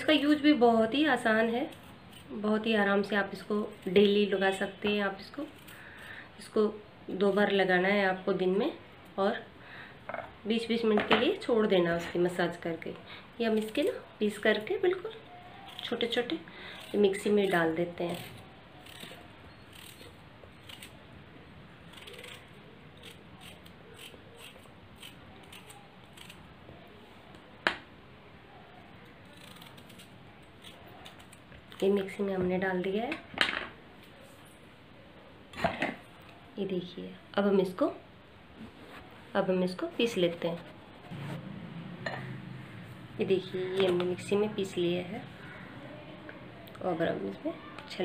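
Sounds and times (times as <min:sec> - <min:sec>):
low steady hum: 0:33.7 - 0:48.0.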